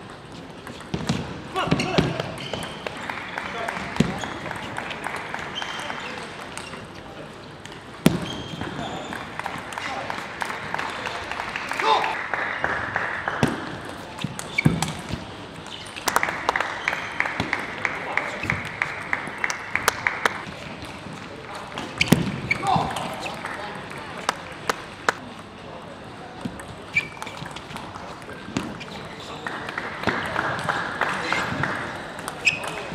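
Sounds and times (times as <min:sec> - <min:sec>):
people clapping: 0:02.6 - 0:06.9, 0:08.7 - 0:14.5, 0:16.0 - 0:21.6, 0:22.6 - 0:25.2, 0:29.2 - 0:32.9.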